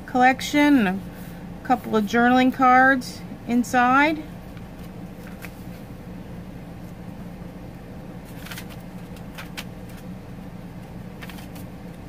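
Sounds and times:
steady low hum: 0.0s - 12.0s
paper pages rustling: 4.8s - 5.8s, 8.2s - 10.1s, 11.2s - 12.0s.

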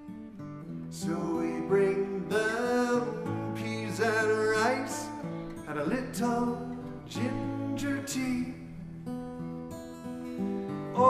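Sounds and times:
strummed acoustic guitar: 0.0s - 11.0s
man singing a lullaby: 0.9s - 8.7s.

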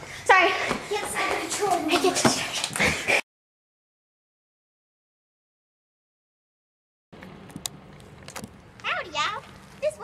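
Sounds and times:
child's voice: 0.3s - 2.5s, 8.8s - 10.0s
low outdoor background hum: 7.2s - 10.0s.

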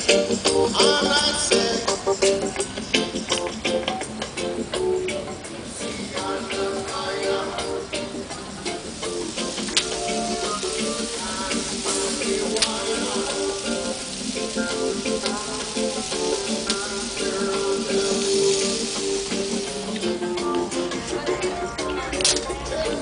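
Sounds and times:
music playing: 0.0s - 23.0s
meat sizzling on grill: 5.7s - 21.2s
fat and embers crackling: 7.1s - 21.0s.

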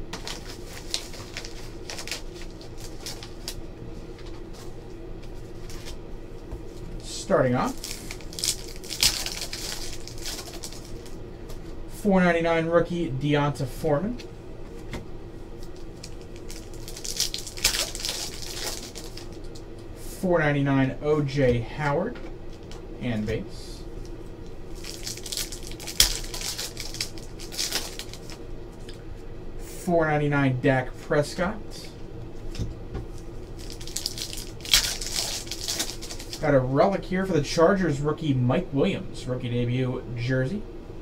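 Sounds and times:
faint room hum: 0.0s - 41.0s
foil wrapper crinkling and tearing: 0.1s - 3.6s, 7.6s - 11.2s, 15.6s - 19.6s, 24.7s - 28.4s, 33.2s - 36.5s.

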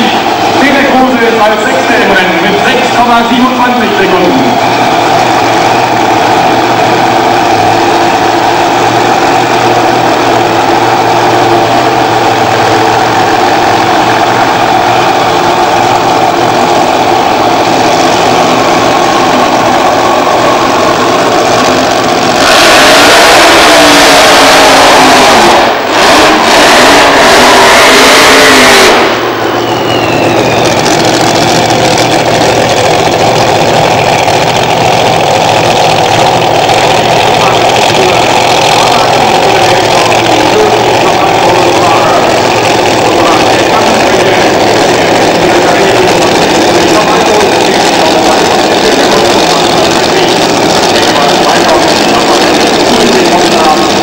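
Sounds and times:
drag racing car engines running: 0.0s - 54.0s
full-throttle engine blast: 0.0s - 54.0s.

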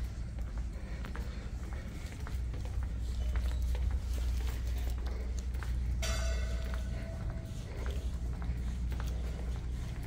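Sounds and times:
footsteps on hard floor: 0.0s - 10.0s
steady low hum: 0.0s - 10.0s.

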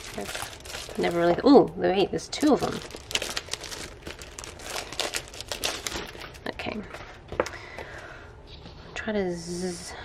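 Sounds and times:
plastic folders rustling and crinkling: 0.0s - 1.6s, 2.3s - 7.5s.

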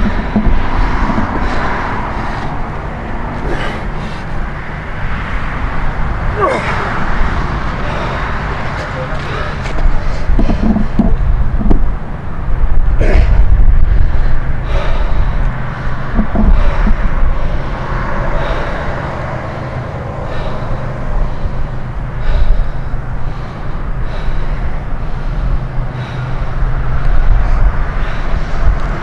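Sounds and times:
man breathing hard: 0.0s - 29.0s
steady low rumble: 0.0s - 29.0s
man grunting and gasping: 3.2s - 4.4s, 6.3s - 11.0s, 12.8s - 15.4s.

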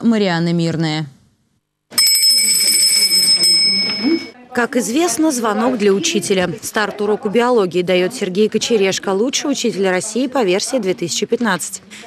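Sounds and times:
school bell ringing: 2.0s - 4.4s.

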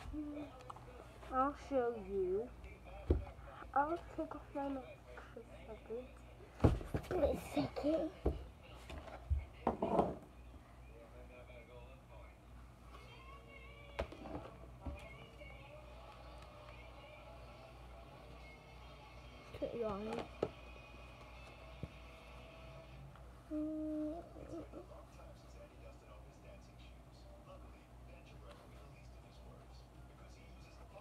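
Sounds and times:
person humming: 23.5s - 24.8s.

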